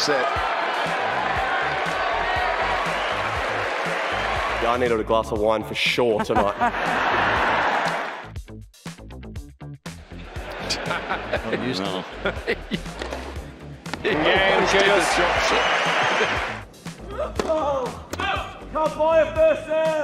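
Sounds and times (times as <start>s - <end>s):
background music: 0.0s - 20.0s
tennis balls struck and bouncing: 17.4s - 18.3s.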